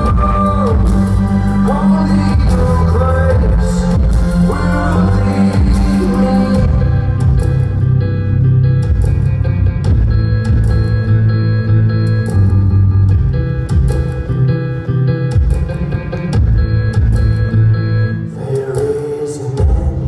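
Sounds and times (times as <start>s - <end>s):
live band instrumental: 0.0s - 20.0s.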